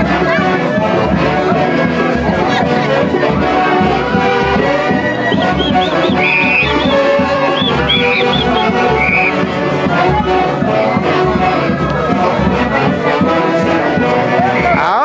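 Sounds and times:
wind instruments: 0:00.0 - 0:15.0
regular bass beat: 0:00.1 - 0:15.0.

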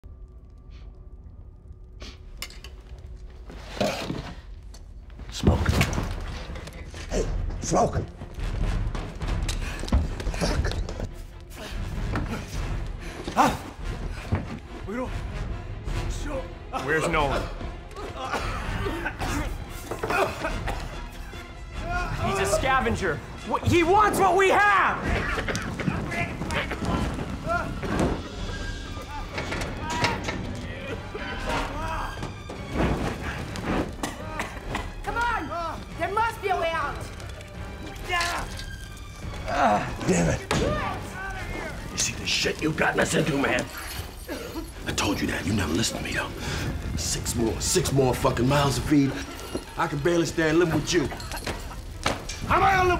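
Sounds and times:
action film music: 0:00.0 - 0:52.9.

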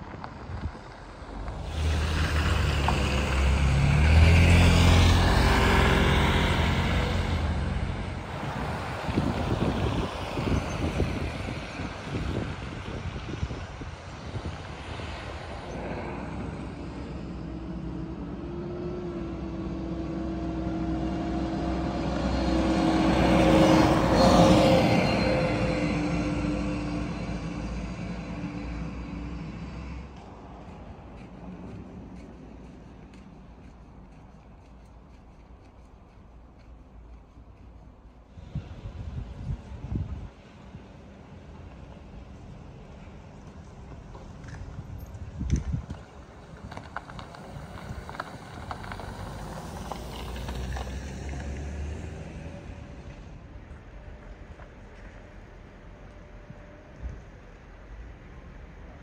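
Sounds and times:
tyre and traffic noise: 0:00.0 - 0:59.0
vehicle engine drone passing: 0:00.2 - 0:59.0.

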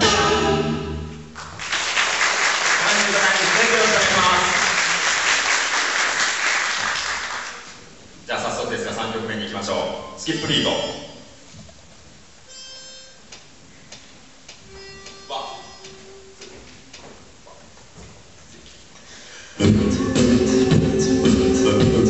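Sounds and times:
a cappella group singing loudly: 0:00.0 - 0:01.2, 0:19.6 - 0:22.0.

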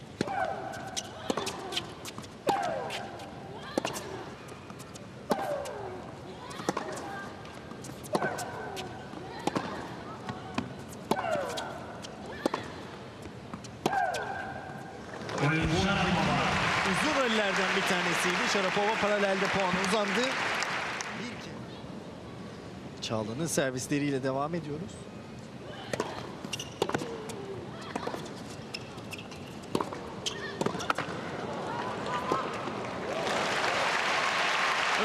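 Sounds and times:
tennis racket hitting ball: 0:00.2 - 0:04.1, 0:06.5 - 0:07.1, 0:07.8 - 0:09.8
crowd applause: 0:15.4 - 0:21.4, 0:32.9 - 0:35.0.

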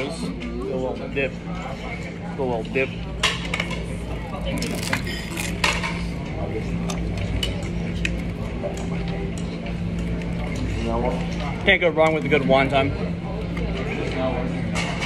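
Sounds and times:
dishes and cutlery clinking: 0:03.2 - 0:06.0.

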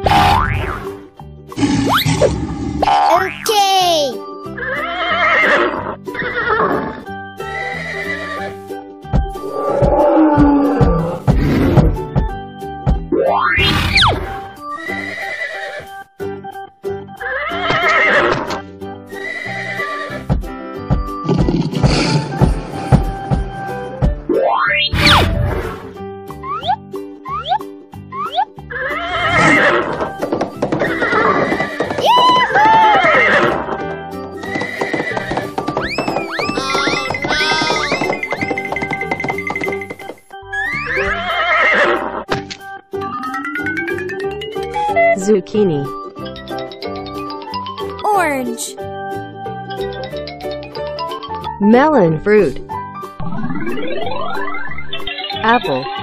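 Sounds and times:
children's background music: 0:00.0 - 0:17.5, 0:18.3 - 0:24.7, 0:25.4 - 0:41.4, 0:42.3 - 0:56.0
horse whinnying: 0:04.6 - 0:08.6, 0:09.4 - 0:11.8, 0:13.6 - 0:15.9, 0:17.2 - 0:18.6, 0:19.2 - 0:20.3, 0:28.7 - 0:30.2, 0:30.8 - 0:33.7, 0:34.4 - 0:38.2, 0:40.6 - 0:42.2.

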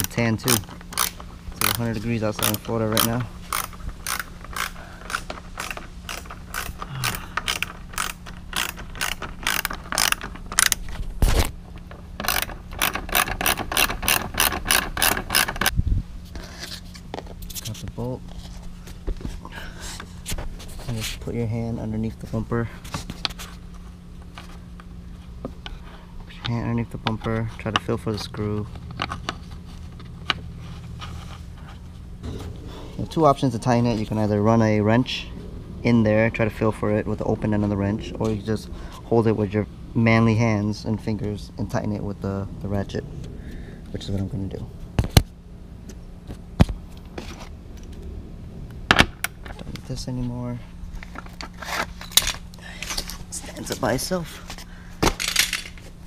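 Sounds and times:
hand ratchet clicking: 0:00.0 - 0:10.9, 0:12.2 - 0:15.7
hand handling bolt and nut: 0:00.0 - 0:15.7, 0:22.0 - 0:32.5, 0:50.9 - 0:56.0
steady low hum: 0:00.0 - 0:56.0.

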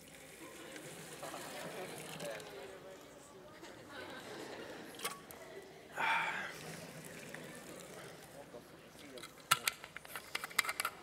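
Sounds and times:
short breath: 0:06.0 - 0:06.6.

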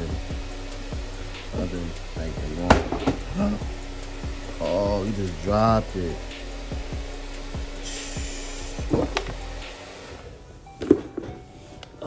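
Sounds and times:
background music with steady beat: 0:00.0 - 0:12.0
box knocks and bumps: 0:02.7 - 0:03.3.

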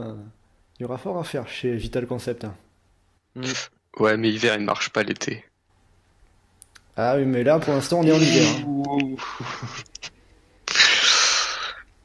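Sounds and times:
breathy hiss: 0:07.7 - 0:12.0.

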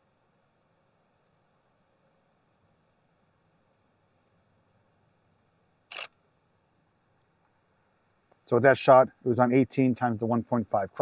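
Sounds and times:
camera shutter click: 0:05.9 - 0:06.2.

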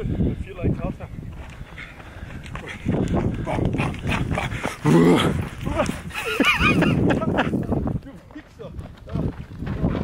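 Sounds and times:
heavy rough breathing: 0:01.6 - 0:06.3
person laughing: 0:05.7 - 0:07.8.

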